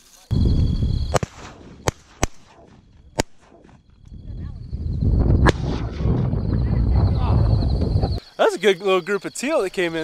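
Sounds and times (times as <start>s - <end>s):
low rumbling noise: 0.3s - 1.9s, 2.6s - 8.2s
shotgun shots: 1.1s - 3.8s, 5.4s - 6.2s.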